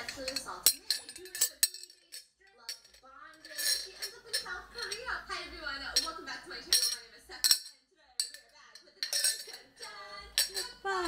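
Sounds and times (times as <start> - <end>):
glass tumbler clinking: 0.0 - 5.2, 5.9 - 11.0.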